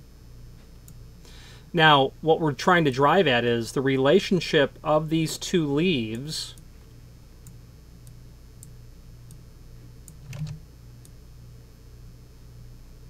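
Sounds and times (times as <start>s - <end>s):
steady low hum: 0.0s - 13.0s
computer mouse clicks: 10.0s - 11.2s.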